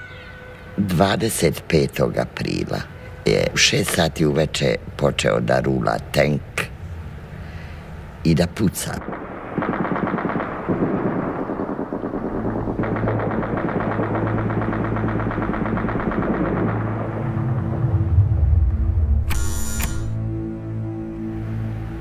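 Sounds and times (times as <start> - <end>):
rapid automatic gunfire: 9.0 - 17.4
low steady drone: 9.0 - 22.0
electric doorbell buzzing: 19.3 - 20.2.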